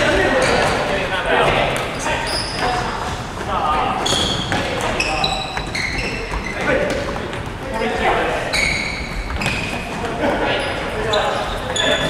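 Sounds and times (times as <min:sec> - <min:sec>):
balls kicked and bouncing on wood floor: 0:00.0 - 0:10.3
high squeak: 0:08.5 - 0:09.8, 0:10.6 - 0:12.0.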